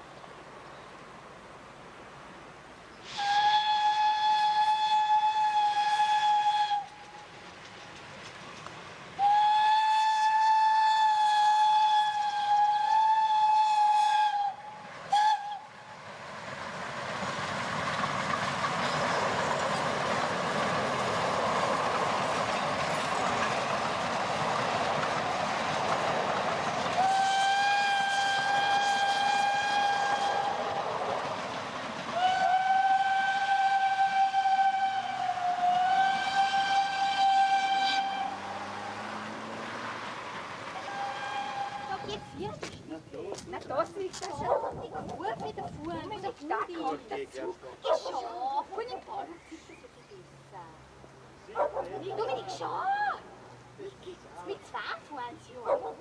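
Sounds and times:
steam train passing: 0.0 - 56.0
steam locomotive whistle blasts: 3.0 - 7.3, 9.2 - 15.8, 26.9 - 31.0, 32.1 - 39.8, 40.7 - 42.4.

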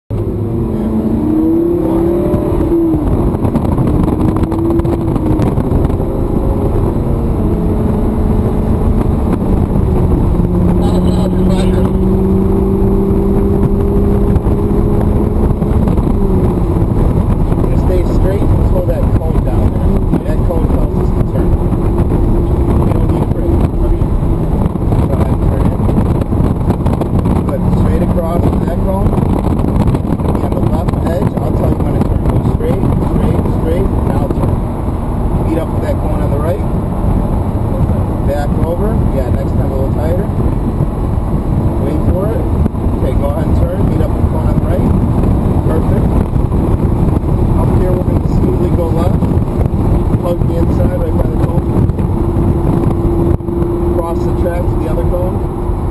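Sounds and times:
car engine revving: 0.1 - 55.9.

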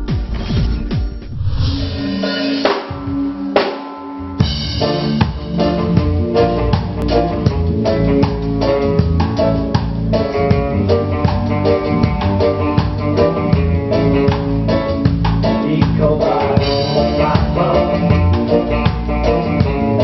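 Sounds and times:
band music: 0.0 - 20.0.

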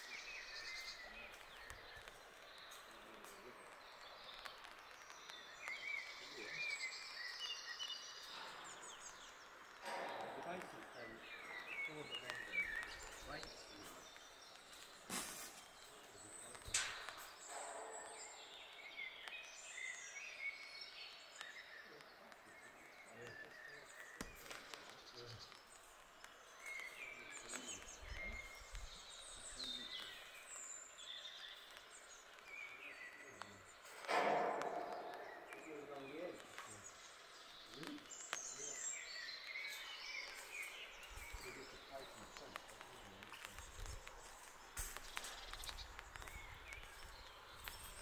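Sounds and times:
birds chirping and trilling: 0.0 - 48.0.

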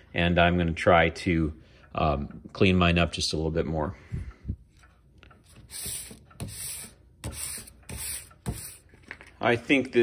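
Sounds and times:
sandpaper rubbing on brass: 5.7 - 8.9.

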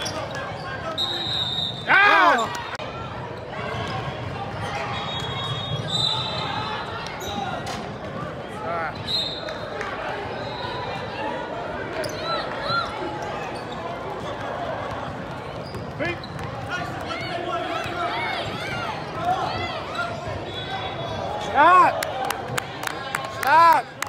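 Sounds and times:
sneakers squeaking: 0.0 - 8.1, 11.8 - 21.5
murmur of voices: 0.0 - 24.0.

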